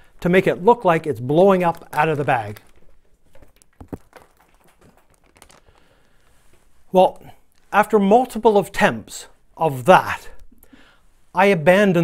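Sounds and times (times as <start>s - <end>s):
bag crinkling: 0.6s - 8.6s
popcorn landing ticks: 1.6s - 6.3s.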